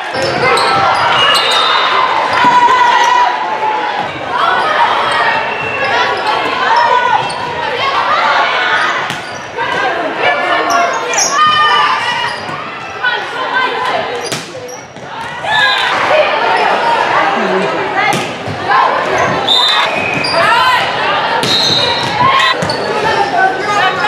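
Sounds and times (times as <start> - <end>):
players calling and shouting: 0.0 - 24.0.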